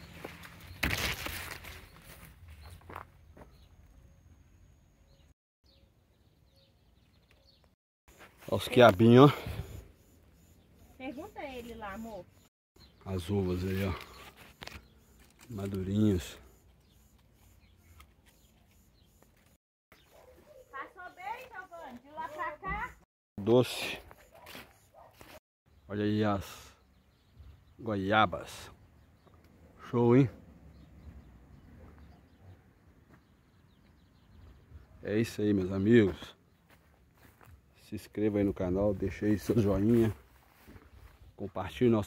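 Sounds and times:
leaves rustling: 0.0s - 2.6s
footsteps on dirt path: 0.0s - 3.8s, 23.8s - 25.4s, 33.0s - 34.8s, 36.0s - 37.8s, 38.4s - 41.5s
faint high chirps and ticks: 8.8s - 13.1s, 14.0s - 22.9s.

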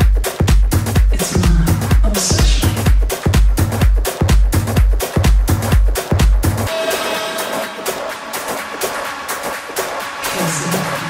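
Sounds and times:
electronic techno music: 0.0s - 11.0s.

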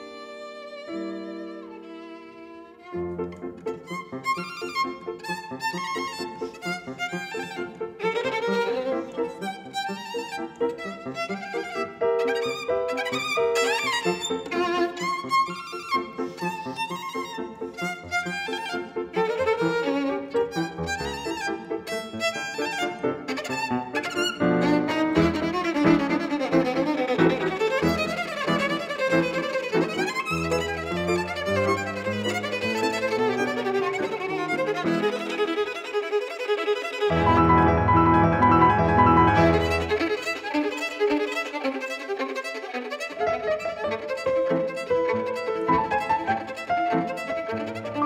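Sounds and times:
violin with vibrato: 0.0s - 48.0s
piano chords: 0.7s - 36.3s, 36.9s - 41.6s, 42.9s - 48.0s.

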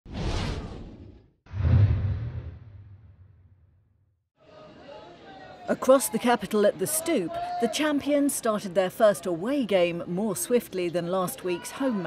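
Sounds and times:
swish: 0.1s - 3.6s
deep low hit: 1.5s - 3.7s.

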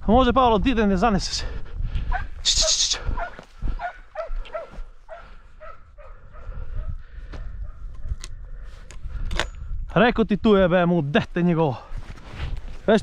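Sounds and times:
hound yelping: 3.2s - 6.5s.

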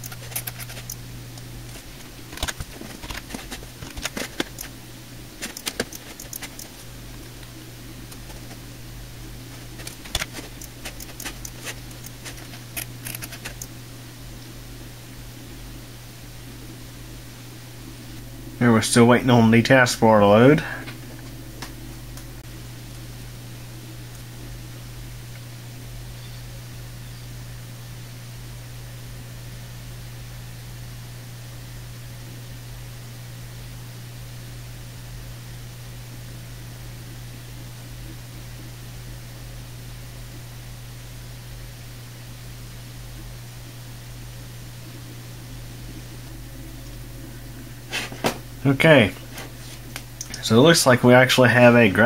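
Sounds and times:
desktop computer fan humming: 0.0s - 52.0s.

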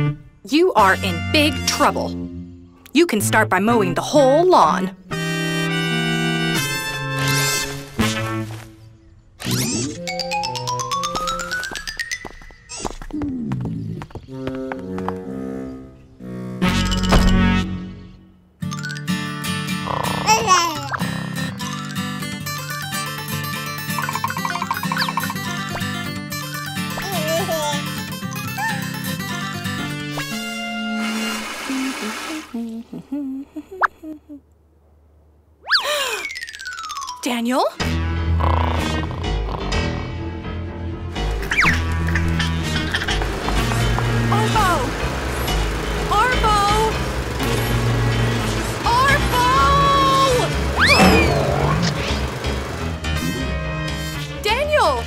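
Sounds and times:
cartoon background music: 0.0s - 8.6s, 9.4s - 12.9s, 14.4s - 32.1s, 35.6s - 55.0s
cartoon sound effects sweeping in pitch: 50.8s - 51.8s.

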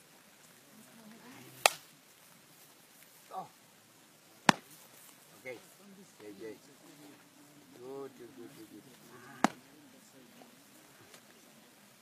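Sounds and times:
faint outdoor background: 0.0s - 12.0s
sharp snap: 1.6s - 1.8s.

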